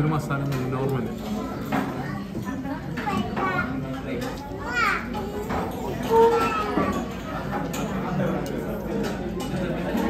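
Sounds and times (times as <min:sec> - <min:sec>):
children and adults chattering: 0:00.0 - 0:10.0
child's high-pitched call: 0:06.1 - 0:07.0.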